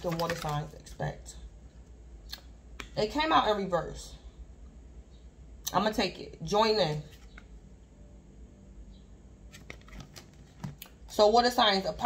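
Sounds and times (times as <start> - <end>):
card clicks and rustles: 0.0 - 0.7, 9.5 - 11.0.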